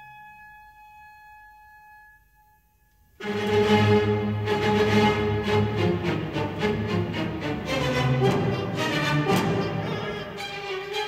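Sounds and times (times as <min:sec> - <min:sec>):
soft high orchestral note: 0:08.0 - 0:11.0.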